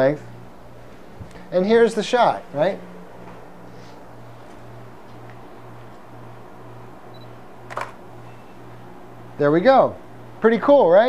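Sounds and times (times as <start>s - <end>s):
low pulsing hum: 0.0s - 11.0s
camera shutter click: 7.7s - 8.0s.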